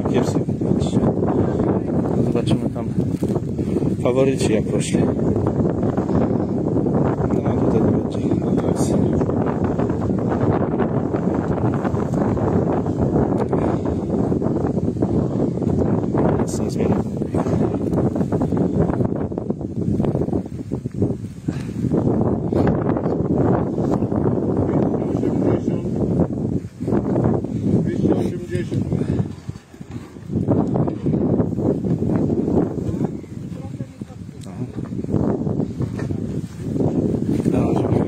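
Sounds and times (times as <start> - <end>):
wind buffeting microphone: 0.0 - 38.0
rustling and handling of net: 3.0 - 3.8.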